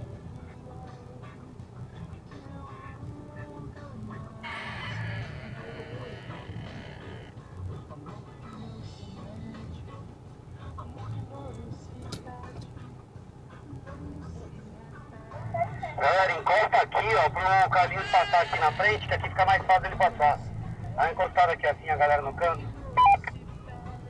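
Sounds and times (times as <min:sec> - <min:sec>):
music: 0:00.0 - 0:24.0
faint voices: 0:03.2 - 0:07.4, 0:13.6 - 0:24.0.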